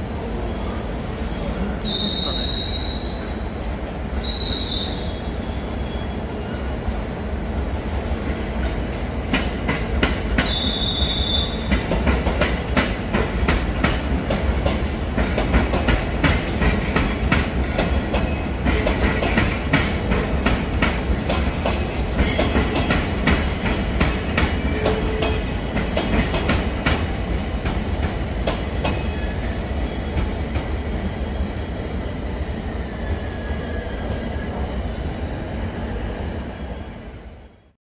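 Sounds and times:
steady train rumble: 0.0 - 37.8
train wheels clicking over rail joints: 8.6 - 11.0, 11.6 - 29.1
high wheel squeal: 29.0 - 37.7.

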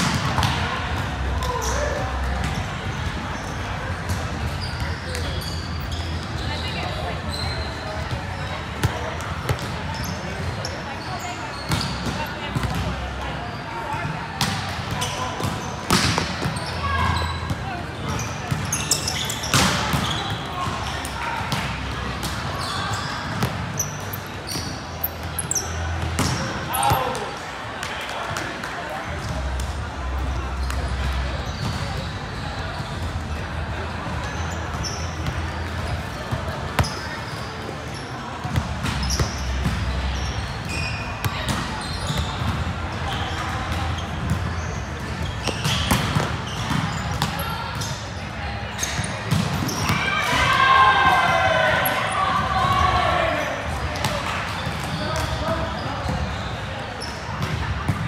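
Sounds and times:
players calling and chatting: 0.0 - 58.0.

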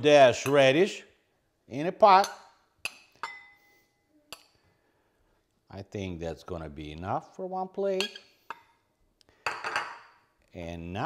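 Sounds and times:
spoon clinking on ceramic dish: 2.2 - 4.6, 8.0 - 8.7, 9.5 - 10.2.

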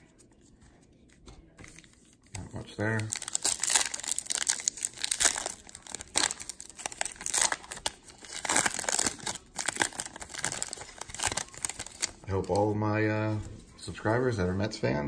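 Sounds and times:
foil wrapper tearing and crinkling: 2.4 - 12.6.

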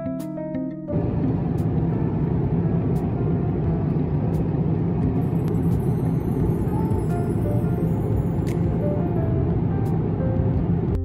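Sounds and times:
airliner cabin engine rush: 0.9 - 11.0.

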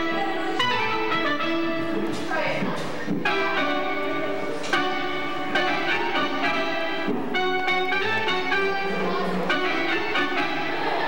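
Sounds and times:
live band playing chords: 0.0 - 11.0.

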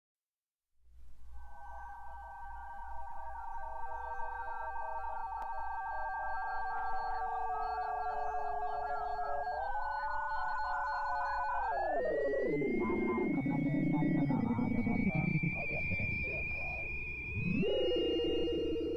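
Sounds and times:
electronic held tones: 1.4 - 18.9.

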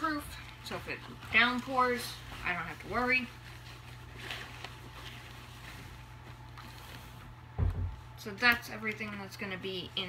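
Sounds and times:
cloth bag rustling: 0.0 - 7.5.

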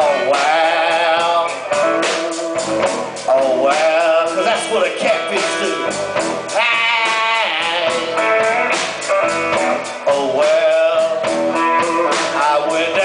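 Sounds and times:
electric blues band playing: 0.0 - 13.0
lead guitar bending notes: 0.0 - 13.0.

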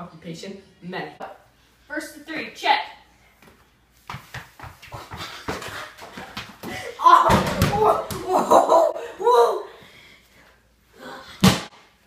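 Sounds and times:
footsteps: 3.3 - 8.3
basketball bouncing on wooden floor: 7.3 - 8.4.

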